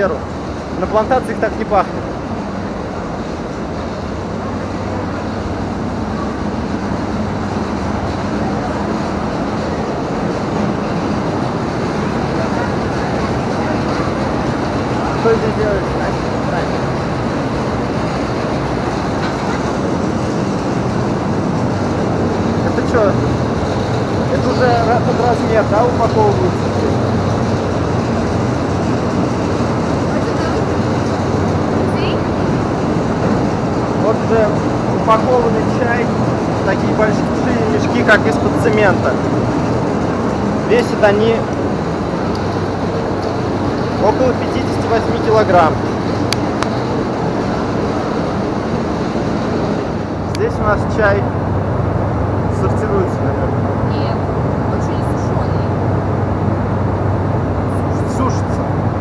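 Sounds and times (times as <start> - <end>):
indistinct voices: 0.0 - 51.3, 52.4 - 56.0, 57.6 - 58.7
machinery rumbling: 0.0 - 59.0.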